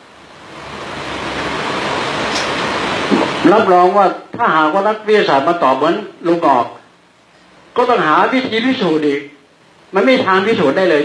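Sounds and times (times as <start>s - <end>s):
rushing surf-like noise: 0.0s - 6.4s.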